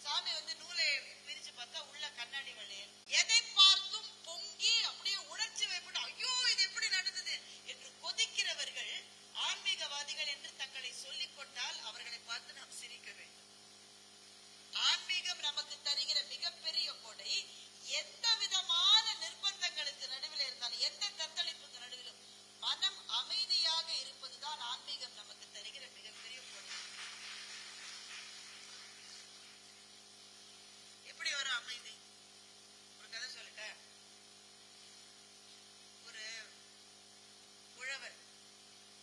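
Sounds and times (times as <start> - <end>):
woman lecturing into microphone: 0.0 - 13.3, 14.8 - 26.8, 31.1 - 32.0
faint steady hum: 0.0 - 39.0
low steady hiss: 14.7 - 32.0
faint audience applause: 26.4 - 29.6.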